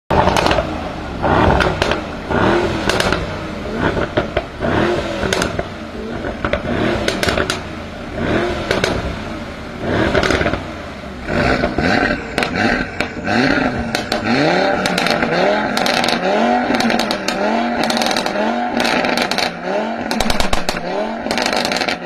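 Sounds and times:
exhaust cracks and pops: 0:00.1 - 0:00.8, 0:01.4 - 0:02.1, 0:02.8 - 0:04.6, 0:05.2 - 0:07.7, 0:08.7 - 0:09.1, 0:10.1 - 0:10.7, 0:13.9 - 0:22.0
car engine revving: 0:00.1 - 0:22.0.

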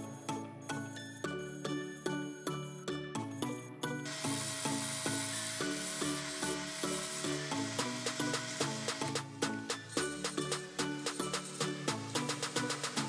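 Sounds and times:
background music: 0:00.0 - 0:13.0
lathe tool scraping wood: 0:04.1 - 0:09.0.

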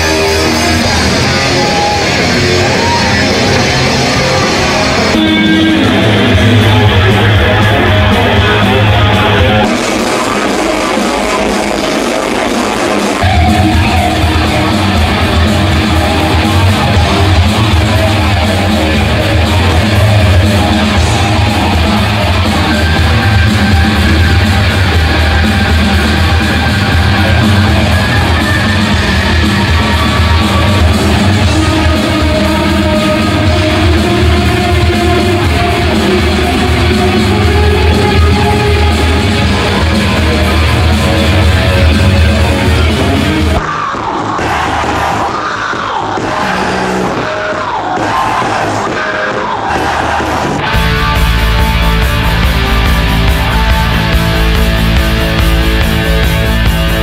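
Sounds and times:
electric guitar: 0:00.0 - 0:57.0
hard rock music: 0:00.0 - 0:57.0.

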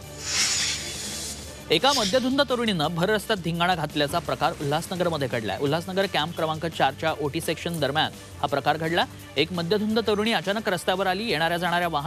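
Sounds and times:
whoosh sound effect: 0:00.0 - 0:02.7
quiet background music: 0:00.0 - 0:12.0
narrator speaking: 0:01.7 - 0:03.1.

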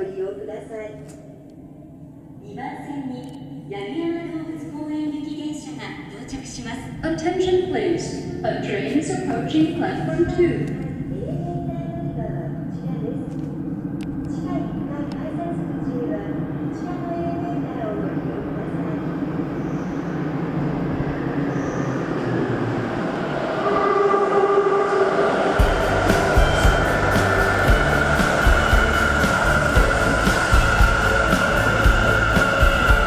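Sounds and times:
steady train whine: 0:00.0 - 0:33.0
train rumble: 0:00.0 - 0:33.0
train cars thumping: 0:25.6 - 0:33.0.

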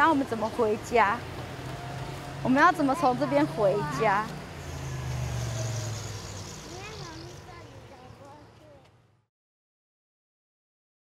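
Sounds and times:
car passing by: 0:00.5 - 0:08.2.

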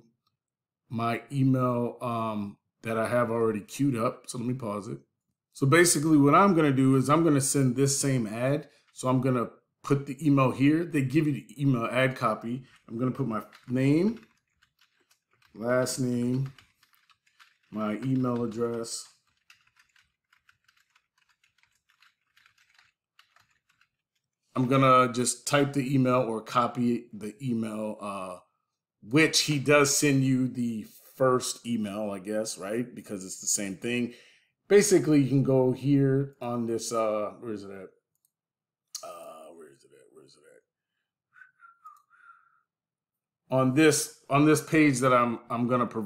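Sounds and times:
computer keyboard typing: 0:11.8 - 0:24.3
soft whistling: 0:41.3 - 0:42.7.

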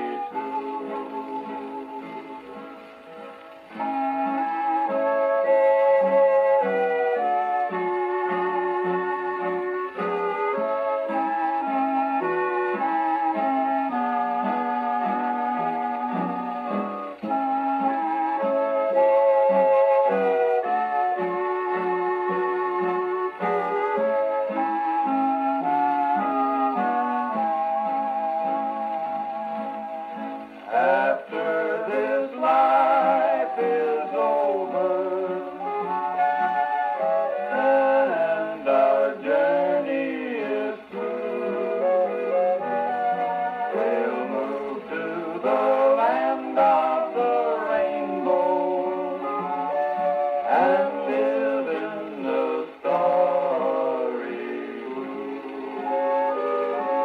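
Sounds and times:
string band record on gramophone: 0:00.0 - 0:57.0.

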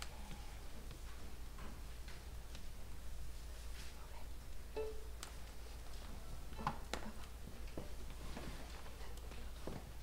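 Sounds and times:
low steady hum: 0:00.0 - 0:08.2.

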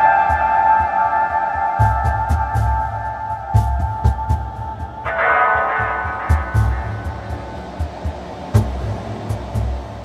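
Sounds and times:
ambient meditation music: 0:00.0 - 0:10.0.

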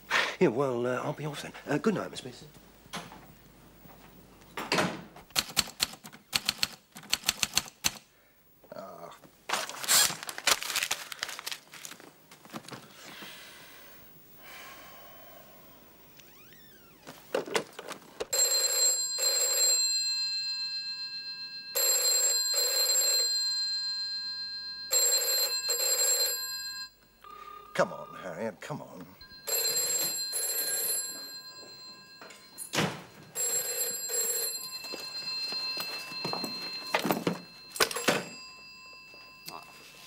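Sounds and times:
telephone bell double ring: 0:18.3 - 0:28.2, 0:29.2 - 0:40.0.

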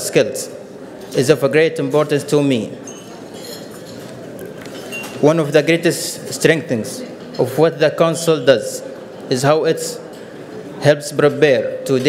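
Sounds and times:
room noise: 0:00.0 - 0:12.0
cutlery and glassware clinks: 0:00.9 - 0:05.6.

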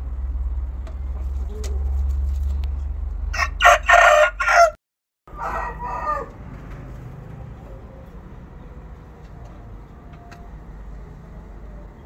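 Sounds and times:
rooster crowing: 0:03.3 - 0:06.5.

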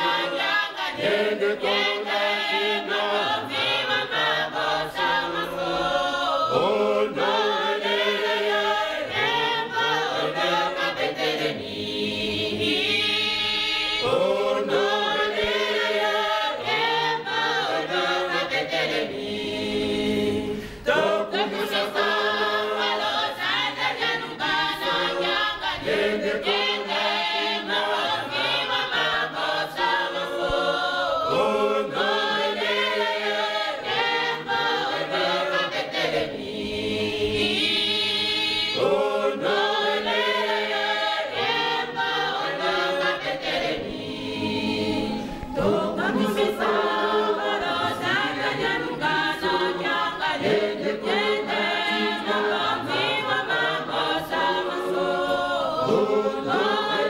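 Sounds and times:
women's choir singing: 0:00.0 - 0:57.0.

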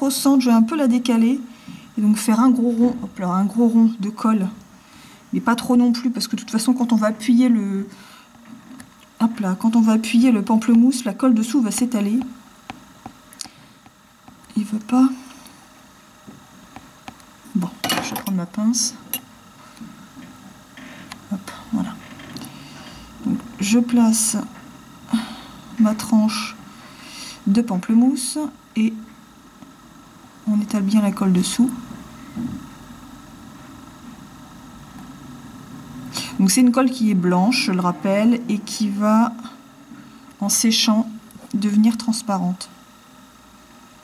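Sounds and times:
woman's voice: 0:00.0 - 0:04.6, 0:05.3 - 0:08.0, 0:09.2 - 0:12.4, 0:14.5 - 0:15.4, 0:17.5 - 0:19.2, 0:21.3 - 0:22.1, 0:23.2 - 0:26.6, 0:27.4 - 0:29.2, 0:30.4 - 0:31.9, 0:36.1 - 0:39.6, 0:40.4 - 0:42.8
low background hum: 0:00.0 - 0:44.0.

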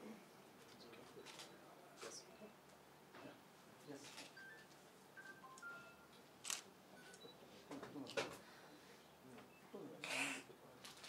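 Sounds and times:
camera shutter clicks: 0:06.4 - 0:06.7.

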